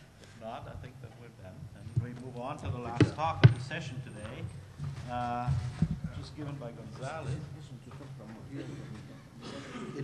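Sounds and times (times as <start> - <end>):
sharp knocks: 2.8 - 3.8.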